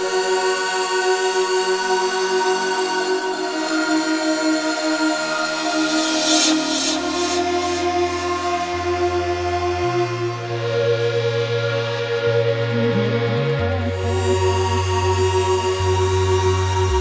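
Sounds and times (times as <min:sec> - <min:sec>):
synth chords: 0:00.0 - 0:17.0
deep bass line: 0:06.5 - 0:17.0.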